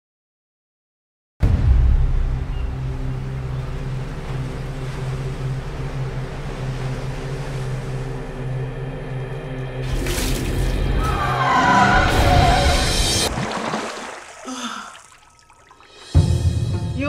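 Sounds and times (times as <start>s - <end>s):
low steady drone: 1.4s - 11.1s
wash of noise: 1.5s - 16.2s.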